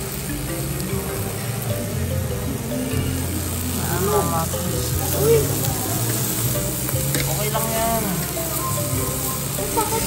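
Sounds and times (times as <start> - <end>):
meat sizzling on a grill plate: 0.0 - 10.0
metal tongs turning meat: 4.9 - 8.4.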